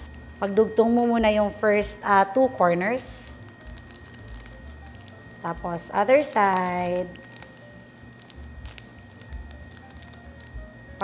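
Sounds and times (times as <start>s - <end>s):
plastic sheet crinkling: 3.3s - 11.0s.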